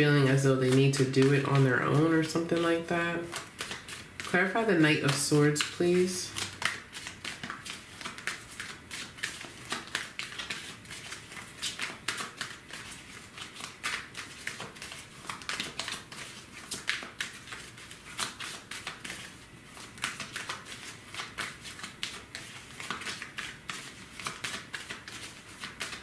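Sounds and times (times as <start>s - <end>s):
cards shuffled by hand: 0.1s - 26.0s.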